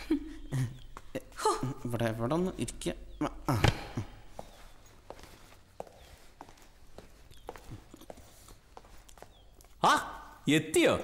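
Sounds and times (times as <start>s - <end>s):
faint footsteps: 3.7s - 10.4s.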